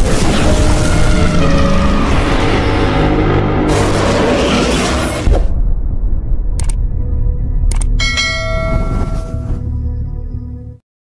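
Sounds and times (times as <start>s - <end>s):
deep bass rumble: 1.2s - 10.2s
bell ringing: 8.0s - 9.6s.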